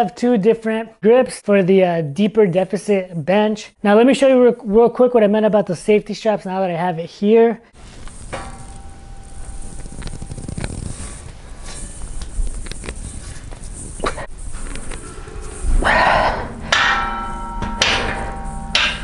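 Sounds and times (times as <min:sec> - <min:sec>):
metal bar clanking against rack: 0:08.3 - 0:09.0, 0:16.6 - 0:19.0.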